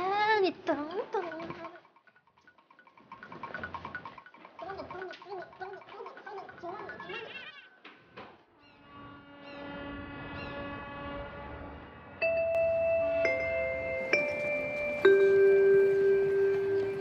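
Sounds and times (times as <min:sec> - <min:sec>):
soft music with held notes: 0:12.2 - 0:17.0.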